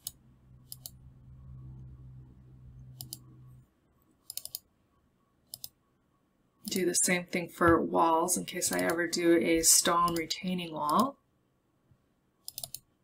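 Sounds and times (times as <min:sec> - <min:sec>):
computer mouse clicking: 0:00.0 - 0:01.0, 0:02.9 - 0:03.3, 0:04.2 - 0:04.7, 0:05.5 - 0:05.8, 0:08.7 - 0:09.0, 0:12.4 - 0:12.9
faint low hum: 0:00.0 - 0:13.0.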